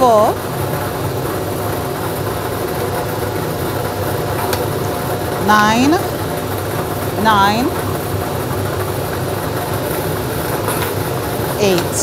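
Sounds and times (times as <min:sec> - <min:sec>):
lottery machine mechanical rumble: 0:00.0 - 0:12.0.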